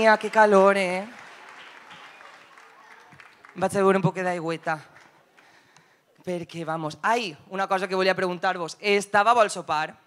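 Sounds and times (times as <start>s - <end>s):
faint audience applause: 0.0s - 5.8s.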